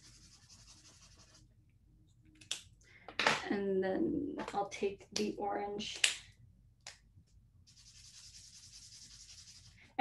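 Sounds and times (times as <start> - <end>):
highlighter rubbing across paper: 0.0 - 1.4, 7.7 - 9.7.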